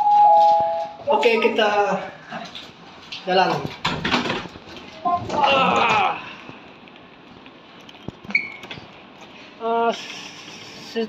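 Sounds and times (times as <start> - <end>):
brief high beep: 0.0 - 1.0.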